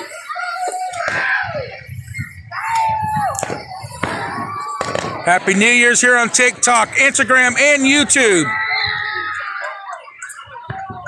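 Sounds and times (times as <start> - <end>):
people shouting: 0.0 - 11.0.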